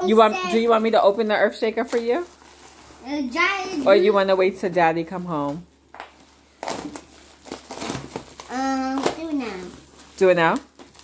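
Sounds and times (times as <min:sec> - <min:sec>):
plastic packaging crinkling: 0:01.6 - 0:03.1, 0:05.9 - 0:11.0
child's drawn-out voice: 0:08.5 - 0:09.8.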